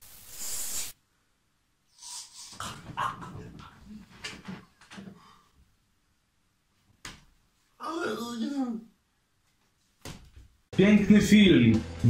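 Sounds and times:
man's wordless vocal noises: 0:02.5 - 0:04.2.

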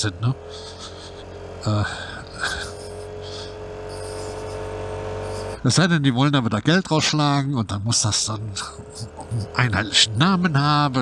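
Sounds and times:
scooter engine running: 0:00.0 - 0:05.8, 0:08.4 - 0:11.0
road and wind noise: 0:00.0 - 0:11.0.

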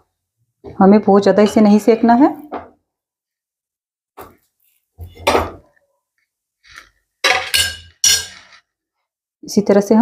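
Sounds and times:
steel spatula clinking on griddle: 0:07.2 - 0:08.6.

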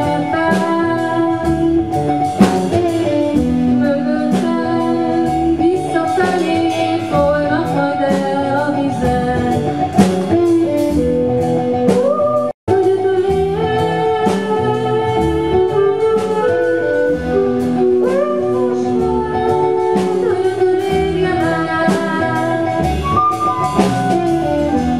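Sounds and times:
woman singing: 0:00.0 - 0:11.0, 0:11.8 - 0:23.1
drum and cymbal hits: 0:00.0 - 0:24.9
live rock band: 0:00.0 - 0:24.9.

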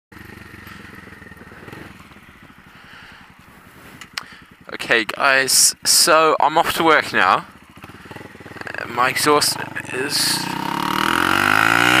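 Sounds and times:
motorcycle engine pulling away: 0:00.1 - 0:12.0.

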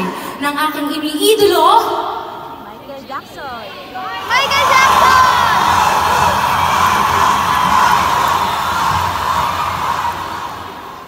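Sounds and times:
concert audience cheering and screaming: 0:04.0 - 0:11.0.

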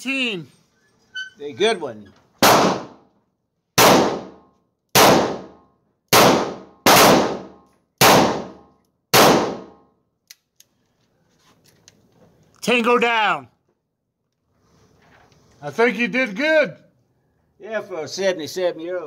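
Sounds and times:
revolver gunshots ringing indoors: 0:02.4 - 0:03.0, 0:03.8 - 0:09.8.

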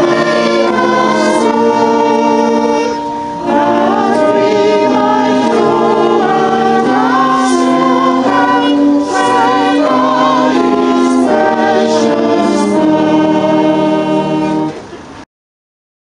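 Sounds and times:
group singing a hymn: 0:00.0 - 0:14.8.

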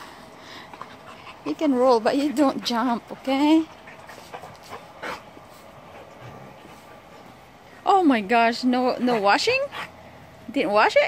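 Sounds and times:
dog snorting: 0:00.6 - 0:07.4.

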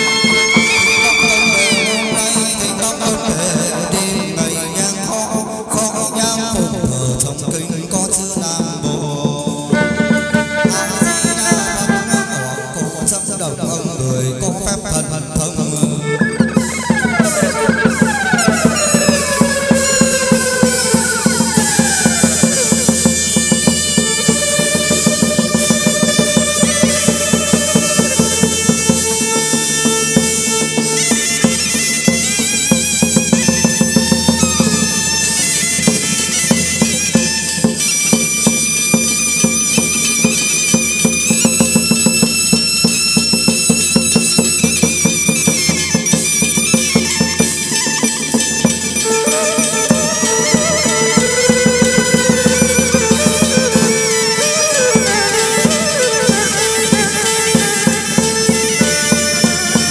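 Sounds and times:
clicking percussion beat: 0:14.6 - 0:59.9
reedy wavering melody: 0:16.2 - 0:31.7, 0:48.3 - 0:59.9.

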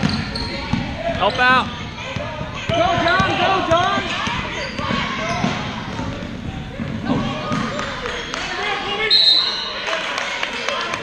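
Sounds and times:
spectators' voices: 0:00.0 - 0:11.0
referee's whistle: 0:09.1 - 0:09.8.

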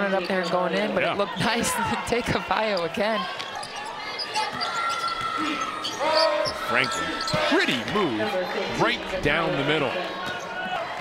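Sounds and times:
crowd voices: 0:00.0 - 0:11.0
shoes squeaking: 0:02.6 - 0:08.2.

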